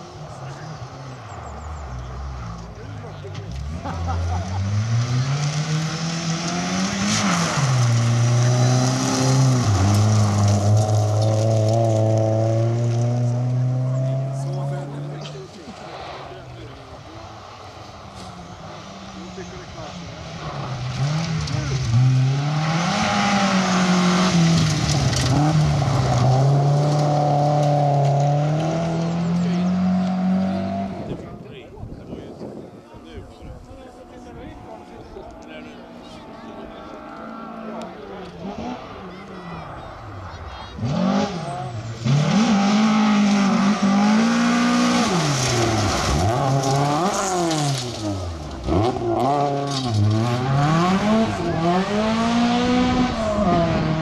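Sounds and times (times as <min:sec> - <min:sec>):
rally car engine revving: 0:00.0 - 0:32.8, 0:33.5 - 0:54.0
gravel spraying from tyres: 0:05.4 - 0:13.1, 0:23.0 - 0:29.1, 0:43.1 - 0:50.2.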